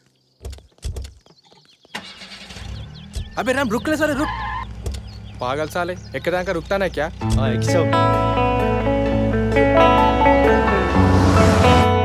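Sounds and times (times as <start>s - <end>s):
small birds chirping: 0.0s - 10.7s
car engine starting and rumbling: 1.9s - 12.0s.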